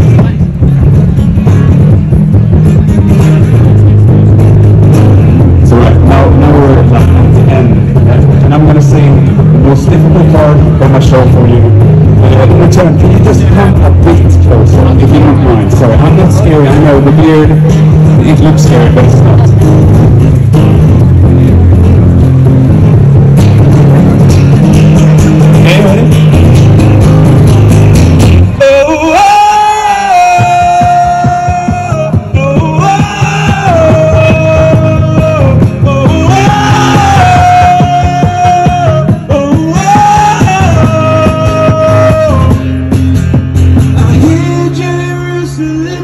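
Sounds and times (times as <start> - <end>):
acoustic guitar: 0.0 - 46.0
person singing: 28.5 - 42.6, 43.9 - 46.0.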